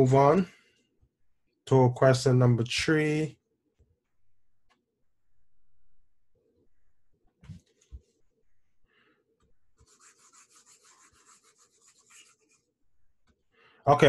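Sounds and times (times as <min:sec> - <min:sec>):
mouse rubbing on desk: 0:09.8 - 0:12.8.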